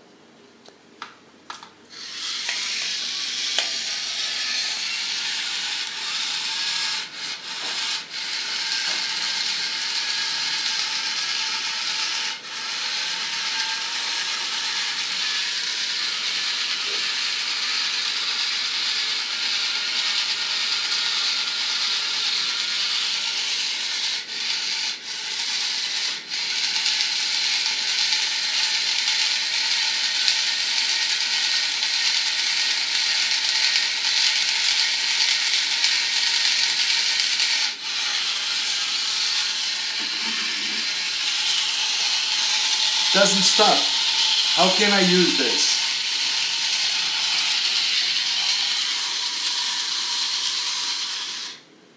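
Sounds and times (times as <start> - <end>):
electric can opener whining: 1.5 - 51.7.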